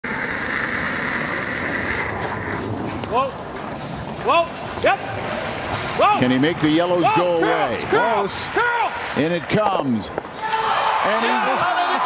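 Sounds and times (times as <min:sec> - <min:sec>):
curling stone gliding on ice: 0:00.0 - 0:10.6.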